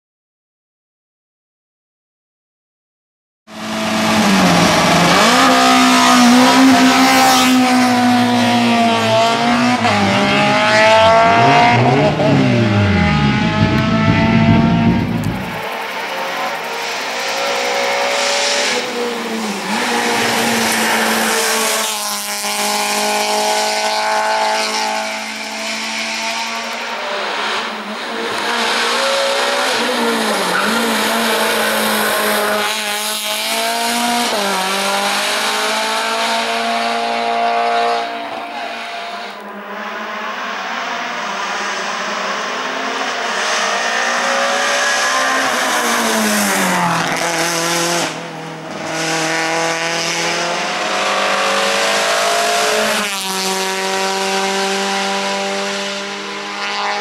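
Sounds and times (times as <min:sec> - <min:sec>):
race car engine revving: 0:03.6 - 0:57.0.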